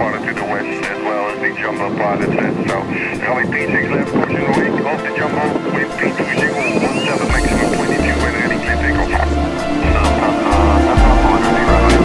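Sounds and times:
jet airliner noise: 0:00.0 - 0:12.0
person speaking: 0:02.2 - 0:12.0
music with pulsing bass beat: 0:06.1 - 0:12.0.

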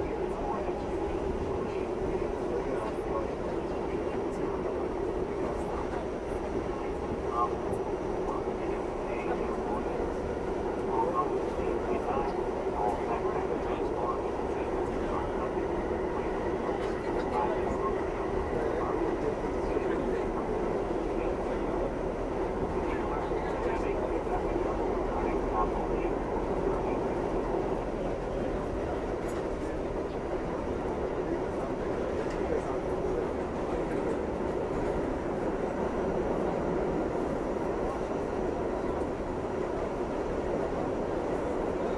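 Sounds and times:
subway car wheels rumbling: 0:00.0 - 0:41.9.

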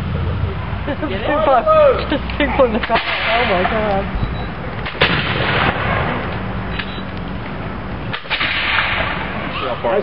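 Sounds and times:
musket shots: 0:04.8 - 0:06.2, 0:08.1 - 0:09.3.

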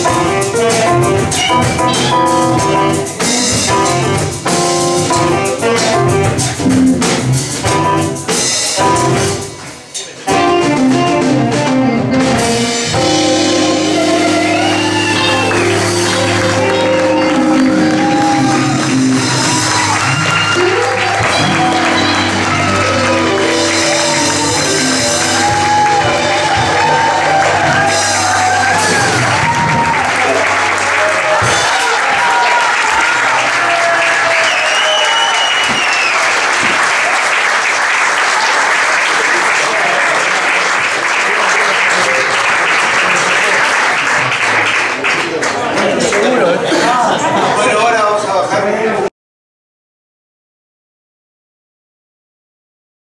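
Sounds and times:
audience cheering and shouting: 0:00.0 - 0:04.2, 0:13.2 - 0:44.4
live jazz band playing: 0:00.0 - 0:44.6
applause with shouts: 0:13.7 - 0:46.5.

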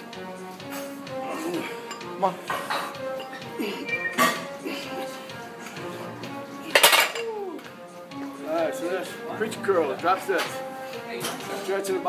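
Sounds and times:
gym music: 0:00.0 - 0:12.0.

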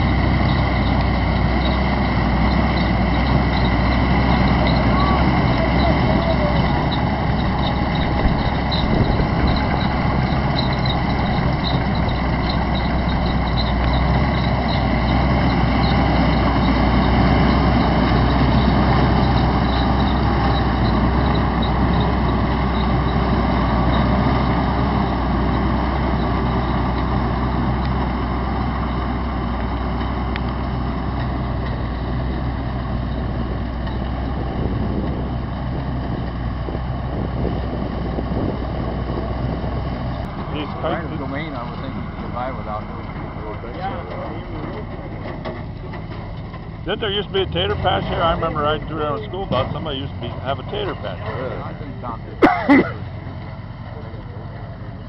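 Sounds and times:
corn picker gathering row: 0:00.0 - 0:55.0
tractor engine under load: 0:00.0 - 0:55.0.

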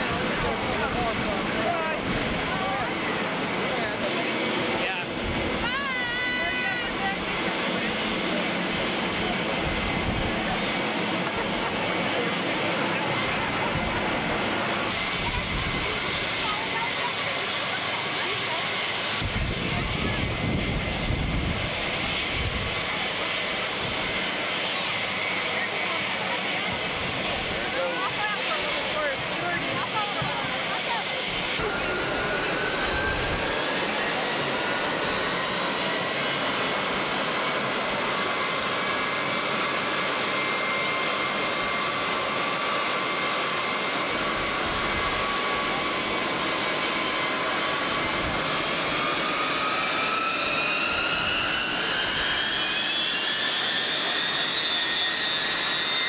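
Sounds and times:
crowd voices: 0:00.0 - 0:56.0
jet engines whining: 0:00.0 - 0:56.0.

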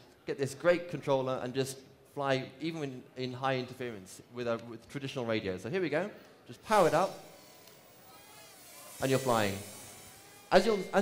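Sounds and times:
drone motors buzzing whine: 0:06.7 - 0:11.0.

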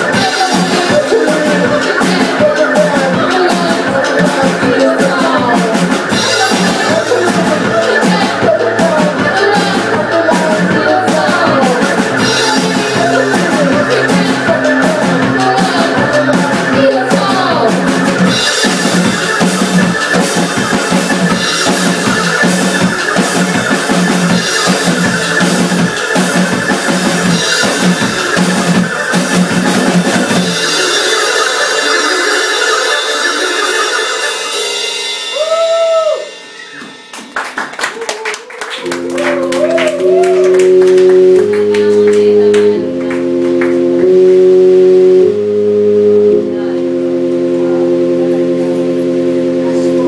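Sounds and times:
keyboard playing: 0:00.0 - 0:50.0.

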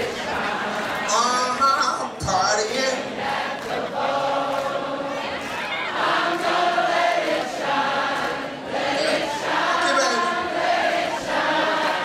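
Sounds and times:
crowd noise: 0:00.0 - 0:12.0
many voices singing: 0:00.0 - 0:12.0.

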